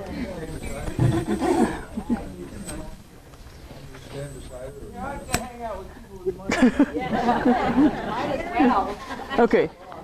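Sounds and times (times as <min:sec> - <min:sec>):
people laughing: 0:00.3 - 0:02.6, 0:06.3 - 0:10.0.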